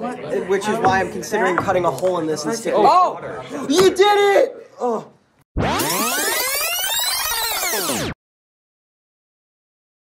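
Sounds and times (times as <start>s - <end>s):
electronic sweeping tones: 5.6s - 8.2s.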